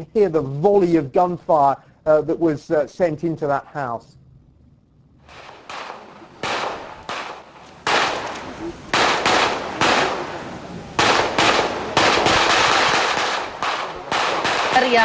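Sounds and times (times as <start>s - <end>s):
gunshots with echo: 5.2s - 15.0s.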